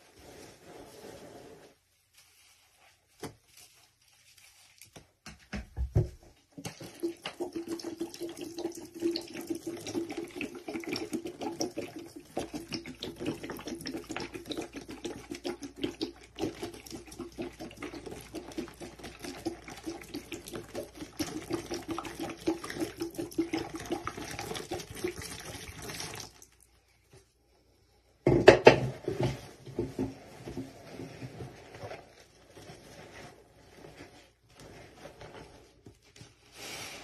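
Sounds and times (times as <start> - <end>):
laundry squelching in water: 6.5 - 27.0.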